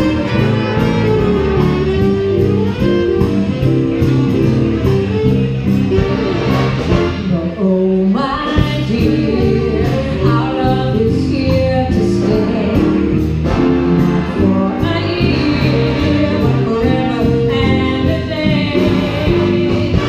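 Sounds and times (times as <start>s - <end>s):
big band playing jazz: 0.0s - 20.0s
woman singing: 7.3s - 13.2s, 14.4s - 20.0s.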